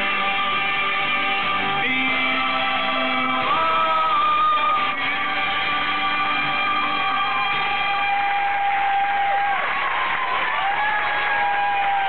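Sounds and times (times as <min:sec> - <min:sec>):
karaoke backing track: 0:00.0 - 0:12.0
man singing: 0:01.6 - 0:08.5
crowd cheering and applauding: 0:02.6 - 0:12.0.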